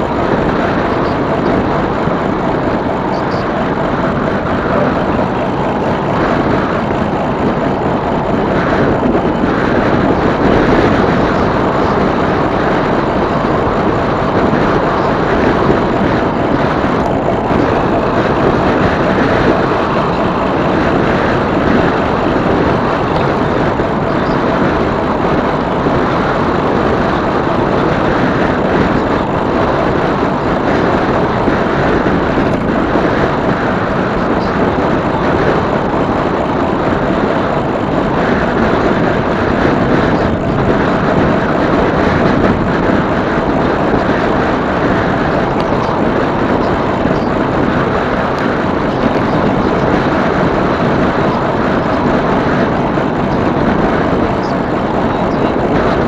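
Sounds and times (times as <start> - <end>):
wind rushing on microphone: 0.0 - 56.0.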